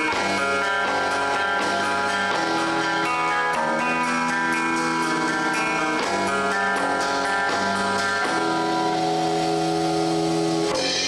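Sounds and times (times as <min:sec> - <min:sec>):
bass guitar: 0:00.0 - 0:11.0
drums: 0:00.0 - 0:11.0
electric guitar chords: 0:00.0 - 0:11.0.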